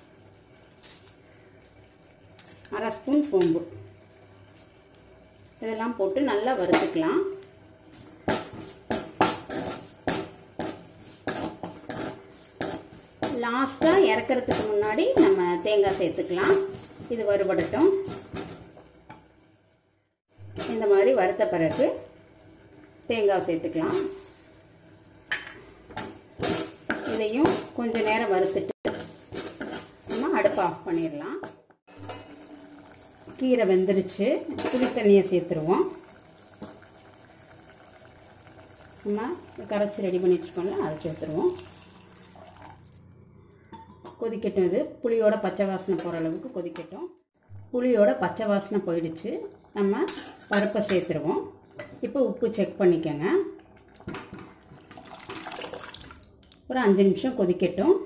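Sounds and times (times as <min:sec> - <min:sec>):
pot simmering on stove: 0:20.3 - 0:43.0, 0:51.7 - 0:56.5
ladle scraping metal pan: 0:26.4 - 0:30.8.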